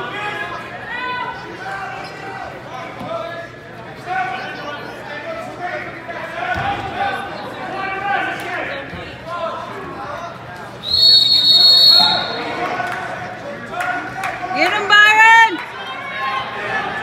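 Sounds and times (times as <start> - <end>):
shrill referee's whistle blast: 10.8 - 12.6
spectators calling out: 10.8 - 12.9.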